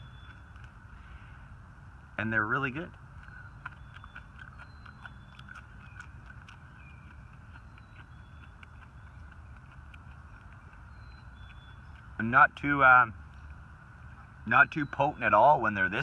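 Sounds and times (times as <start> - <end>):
person chewing crunchy leaves: 0.0 - 1.1, 2.7 - 14.4
low steady rumble: 0.0 - 16.0.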